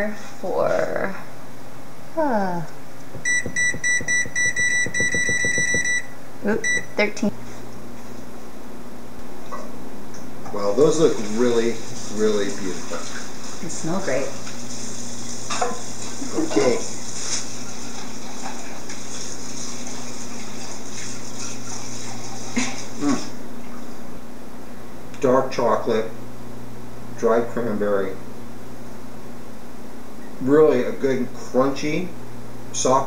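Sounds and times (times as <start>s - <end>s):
low even hum: 0.0s - 18.9s, 21.4s - 33.0s
oven control panel beeping: 3.2s - 6.9s
steady background hiss: 6.1s - 17.8s.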